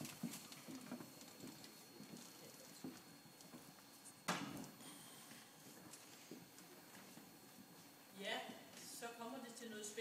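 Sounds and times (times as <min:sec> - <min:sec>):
faint footsteps: 0:00.0 - 0:09.0.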